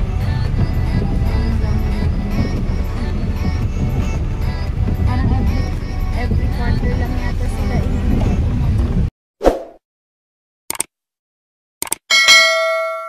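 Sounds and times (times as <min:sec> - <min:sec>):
car noise: 0:00.0 - 0:09.1
music: 0:00.0 - 0:09.1
short swish: 0:09.4 - 0:09.8
quick double clicks: 0:10.7 - 0:10.9, 0:11.8 - 0:12.1
bright bell ding: 0:12.1 - 0:13.0.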